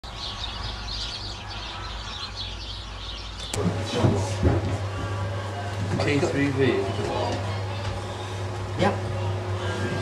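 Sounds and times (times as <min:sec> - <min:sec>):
flock of waterfowl calling: 0:00.1 - 0:03.6.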